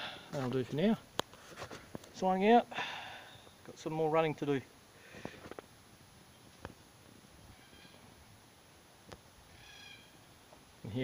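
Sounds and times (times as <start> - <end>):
distant cockatoo calls: 7.5 - 8.2, 9.5 - 10.3.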